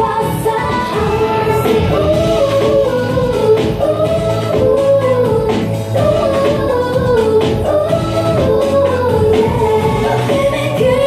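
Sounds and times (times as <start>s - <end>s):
pop song with female vocals: 0.0s - 11.0s
steady bass beat: 0.0s - 11.0s.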